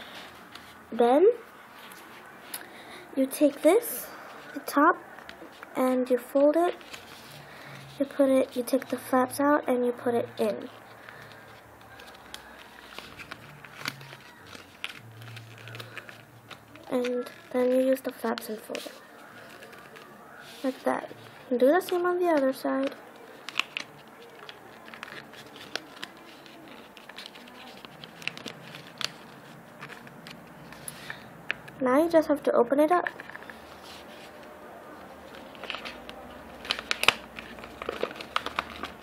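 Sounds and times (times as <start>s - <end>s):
creasing paper crackles: 4.0s - 9.1s, 10.4s - 31.7s, 33.2s - 39.0s
paper rustling and crinkling: 6.6s - 9.0s, 10.6s - 31.7s, 33.1s - 39.0s.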